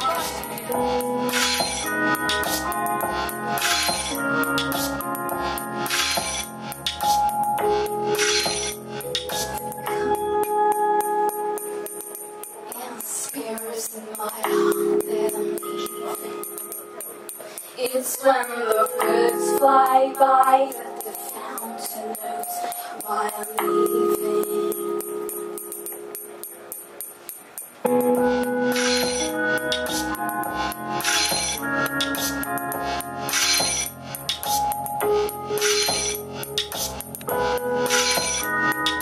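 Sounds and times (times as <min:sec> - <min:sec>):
bass and low drums: 0:00.0 - 0:10.4
electric guitar: 0:00.0 - 0:13.4, 0:27.8 - 0:39.0
live band playing chords: 0:00.0 - 0:13.5, 0:18.5 - 0:39.0
keyboard sustained notes: 0:00.0 - 0:13.6, 0:14.5 - 0:27.0, 0:27.8 - 0:39.0
light percussion ticks: 0:06.1 - 0:39.0
sharp high percussion hits: 0:25.3 - 0:39.0.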